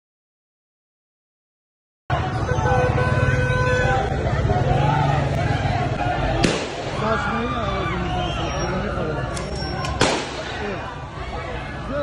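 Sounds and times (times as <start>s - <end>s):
crowd voices and calls: 2.1s - 12.0s
low traffic rumble: 2.1s - 12.0s
car horn: 2.2s - 4.3s.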